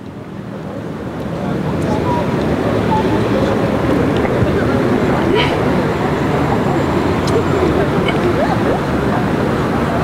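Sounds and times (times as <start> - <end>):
faint voices: 0.0 - 10.0
low rumble of traffic: 0.0 - 10.0.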